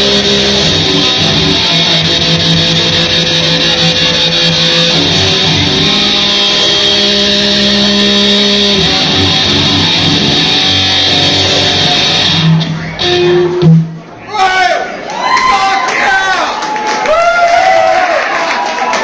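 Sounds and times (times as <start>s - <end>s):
drums: 0.0s - 14.2s
electric guitar long held notes: 0.0s - 14.2s.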